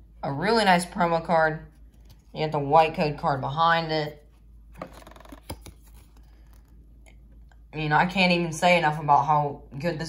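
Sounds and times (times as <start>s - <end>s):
card scraping plastic packaging: 4.8s - 6.8s.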